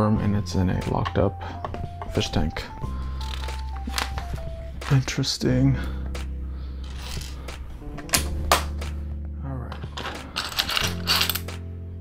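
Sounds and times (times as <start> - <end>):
soft background music: 0.0 - 12.0
plastic bricks clicking and rattling: 9.8 - 11.6.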